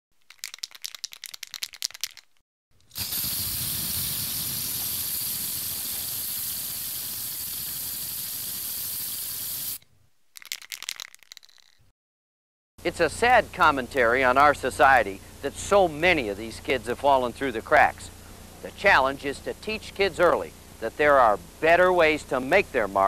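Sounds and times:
spray can mixing ball rattling: 0.2 - 9.8, 10.4 - 11.9
spray can hissing: 2.9 - 9.8.

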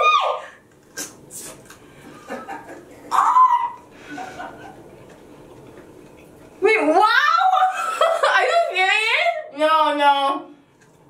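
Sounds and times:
brief hissing sounds: 1.0 - 1.6
women's voices: 6.6 - 10.5.

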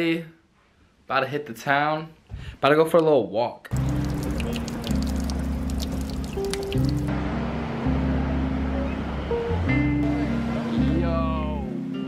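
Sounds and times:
drinking fountain water splashing: 3.7 - 7.1
sustained low music chords: 3.8 - 12.0.

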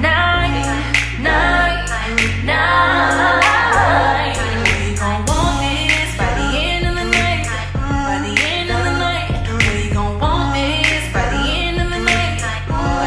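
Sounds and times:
slow beat with deep bass: 0.0 - 13.0.

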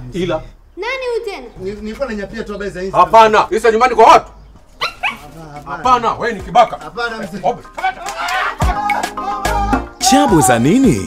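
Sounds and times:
dog barking: 4.8 - 5.3
man shouting: 7.8 - 11.0.

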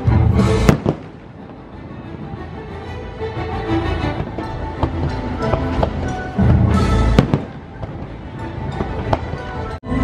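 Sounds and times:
soundtrack music: 0.0 - 10.0
fireworks bursting: 0.4 - 2.3, 4.1 - 9.6.

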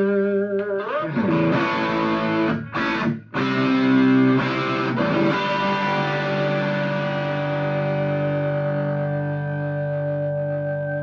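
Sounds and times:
guitar feedback note: 0.0 - 11.0
overdriven electric guitar chord: 1.0 - 11.0.

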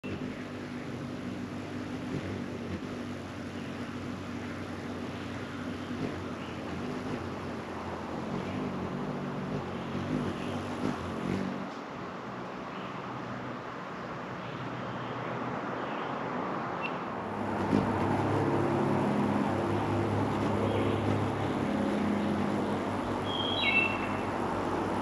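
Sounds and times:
faint birdsong: 0.0 - 11.8, 12.5 - 25.0
hummingbird wings humming: 0.0 - 15.3, 16.8 - 25.0.

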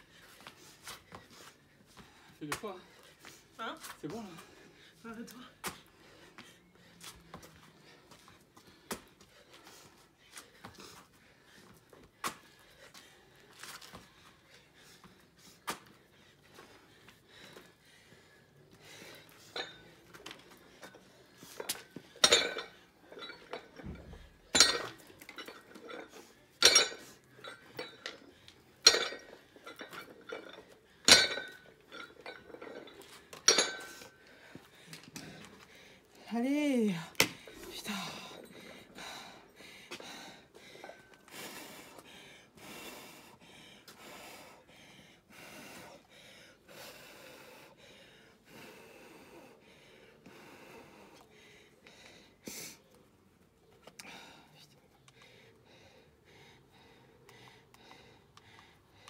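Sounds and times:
dumbbell clanking: 22.2 - 28.2, 28.8 - 34.1.

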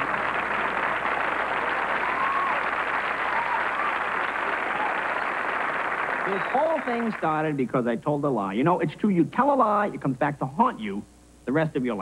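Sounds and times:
voices rising above applause: 0.0 - 7.5
audience clapping: 0.0 - 7.6.

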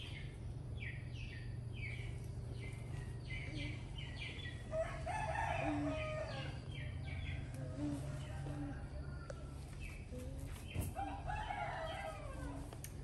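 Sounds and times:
bird chirping: 0.0 - 8.5
steady low hum: 0.0 - 13.0
rooster crowing: 4.7 - 6.7, 7.4 - 9.6, 11.0 - 12.7.

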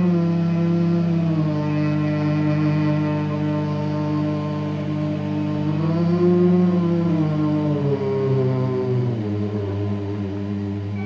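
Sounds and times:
slow sustained music: 0.0 - 11.0.

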